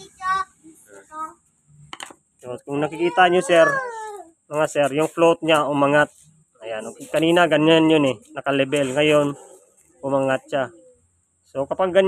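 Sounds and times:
child's high-pitched vocal sounds: 0:00.0 - 0:01.4, 0:02.8 - 0:04.4.

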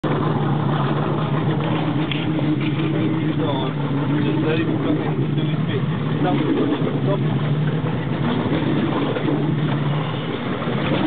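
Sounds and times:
boat motor humming: 0:00.0 - 0:11.0.

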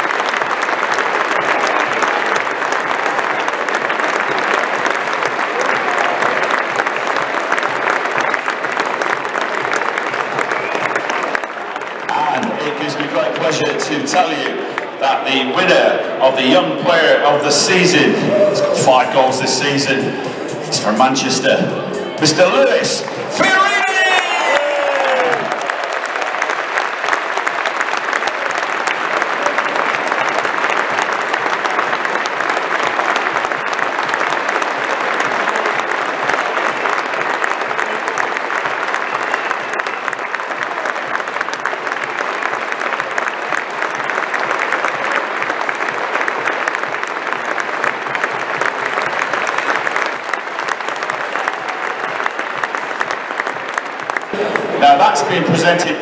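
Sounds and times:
stadium crowd applauding: 0:00.0 - 0:56.0
person speaking: 0:12.1 - 0:24.2.

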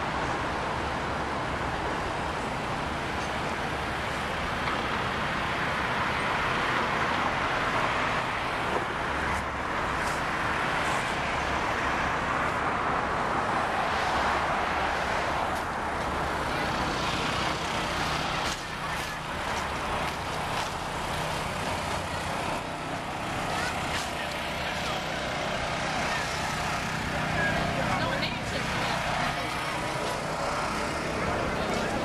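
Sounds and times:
city traffic passing cars: 0:00.0 - 0:32.0.

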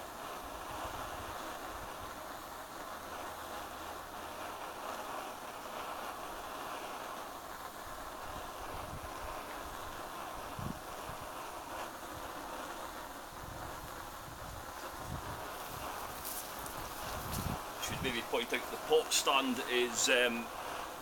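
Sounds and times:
petrol stove burner rushing: 0:00.0 - 0:21.0.

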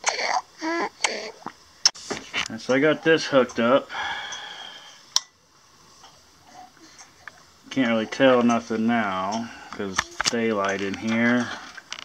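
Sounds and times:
soft breath: 0:03.9 - 0:05.1.

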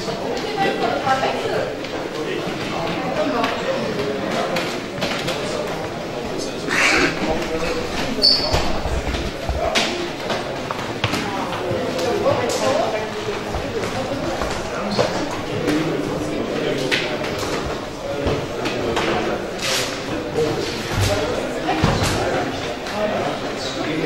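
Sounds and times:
murmur of voices: 0:00.0 - 0:24.0.

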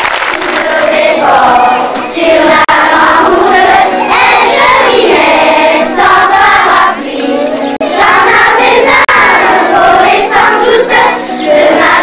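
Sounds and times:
children singing: 0:00.4 - 0:12.0.

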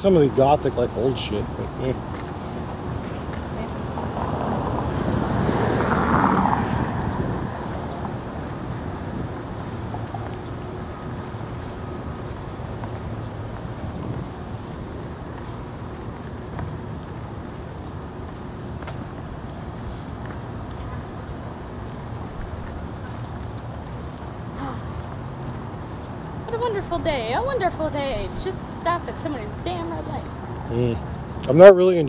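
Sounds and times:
street traffic rumble: 0:00.0 - 0:32.0
vehicle passing: 0:00.0 - 0:32.0.

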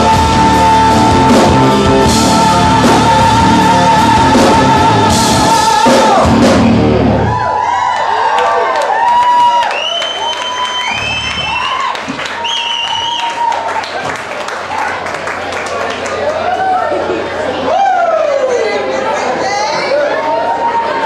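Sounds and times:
live rock band playing: 0:00.0 - 0:07.4
crowd cheering and whooping: 0:04.1 - 0:15.2, 0:15.8 - 0:18.9, 0:20.0 - 0:21.0.

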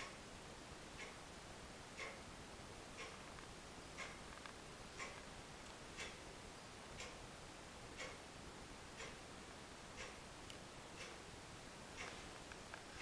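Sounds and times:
clock ticking: 0:01.0 - 0:01.2, 0:02.0 - 0:02.3, 0:03.0 - 0:03.2, 0:04.0 - 0:04.2, 0:05.0 - 0:05.3, 0:06.0 - 0:06.2, 0:06.9 - 0:07.2, 0:08.0 - 0:08.2, 0:09.0 - 0:09.2, 0:10.0 - 0:10.2, 0:11.0 - 0:11.2, 0:12.0 - 0:12.2.

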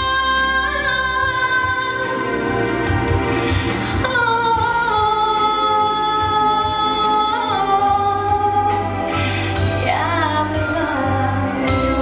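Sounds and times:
woman singing a pop song: 0:00.0 - 0:12.0.

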